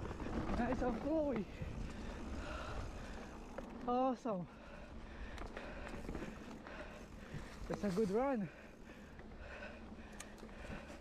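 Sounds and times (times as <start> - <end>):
bike rattling over bumps: 0.0 - 11.0
bike tyres rumbling on dirt: 0.0 - 11.0.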